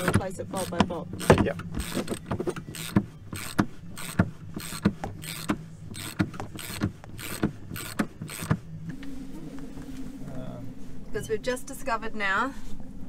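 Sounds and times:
ratchet wrench pawl clicking: 1.2 - 8.6.

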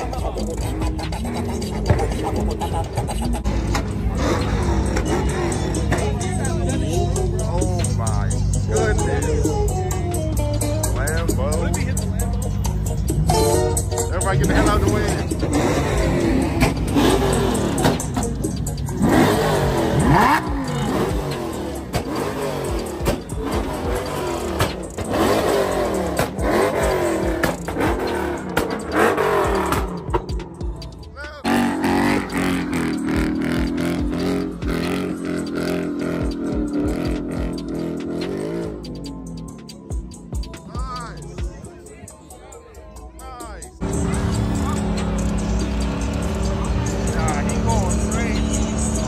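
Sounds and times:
crowd voices: 0.0 - 37.7, 38.8 - 49.0
car engine revving: 0.0 - 41.8, 43.7 - 49.0.

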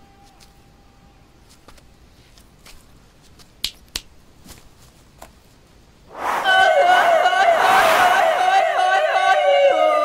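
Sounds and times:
finger snaps: 3.6 - 4.1.

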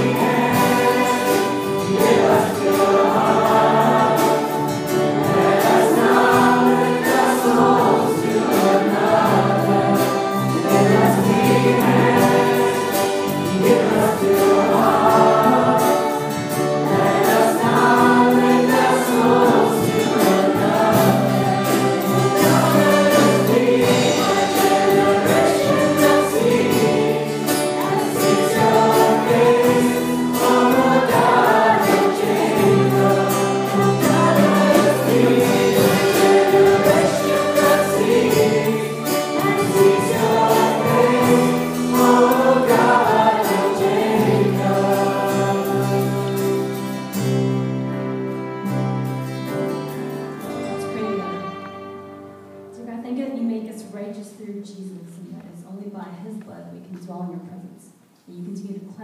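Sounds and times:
congregation singing worship song: 0.0 - 52.8.

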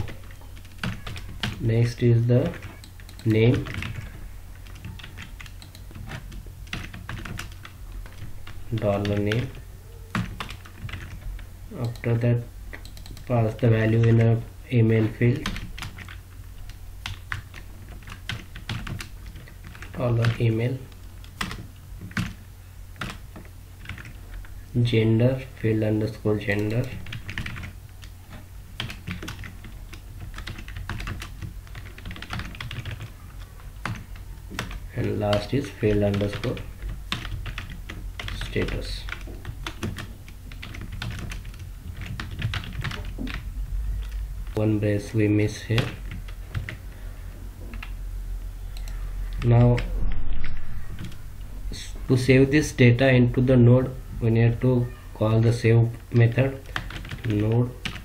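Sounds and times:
computer keyboard typing: 0.0 - 22.4, 23.0 - 24.5, 26.4 - 28.2, 28.8 - 44.6, 45.5 - 46.8, 47.7 - 48.0, 48.7 - 49.9, 50.9 - 51.2, 56.1 - 58.0
low steady hum: 0.0 - 58.0
low hum: 43.0 - 45.2, 46.1 - 52.3.

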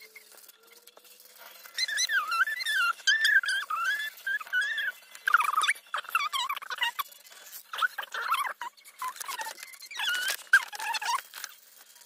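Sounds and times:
marker tip squeaking on paper: 1.3 - 11.6.

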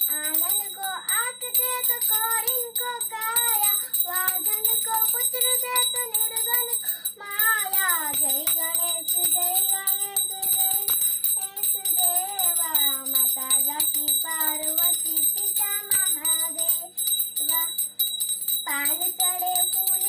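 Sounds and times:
child singing: 0.0 - 17.8, 18.7 - 20.0
brass hand bell ringing: 0.0 - 20.0.

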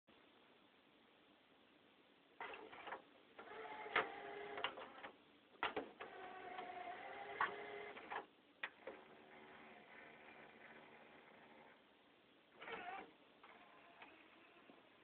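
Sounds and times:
disc player motor whirring: 2.4 - 11.8, 12.6 - 15.0.

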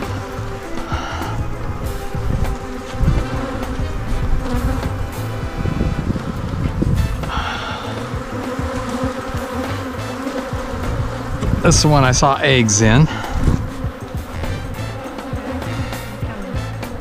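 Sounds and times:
honeybees buzzing: 0.0 - 17.0.

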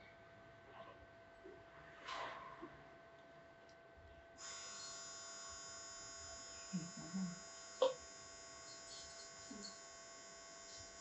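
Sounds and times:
high-pitched electrical buzz: 4.4 - 11.0.

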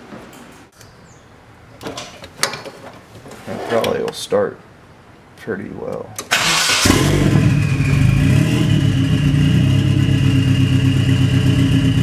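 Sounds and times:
steady low background noise: 0.0 - 6.4.

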